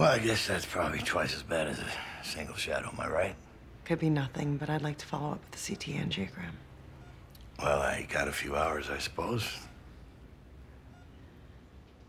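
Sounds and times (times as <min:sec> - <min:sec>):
low steady hum: 0:00.0 - 0:12.0
patient monitor beeps: 0:06.9 - 0:10.2, 0:10.8 - 0:12.0.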